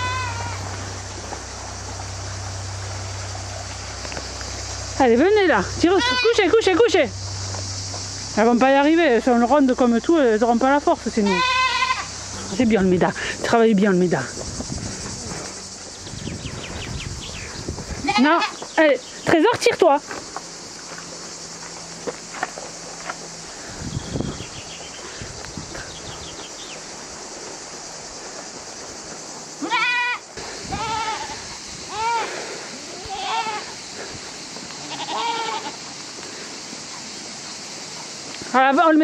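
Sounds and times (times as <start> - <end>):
goats bleating: 0.0 - 0.8, 5.8 - 6.6, 11.2 - 12.1, 17.9 - 18.6, 29.6 - 33.8, 34.7 - 35.9
steady high hiss: 0.0 - 39.0.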